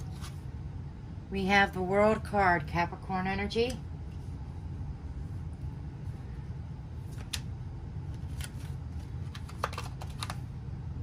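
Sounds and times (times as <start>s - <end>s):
steady low hum: 0.0s - 11.0s
cards clicking and tapping: 8.1s - 10.4s.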